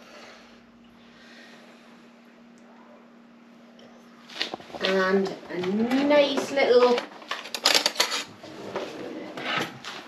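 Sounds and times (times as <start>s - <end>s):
metal cutlery clinking in a drawer: 7.3s - 8.3s.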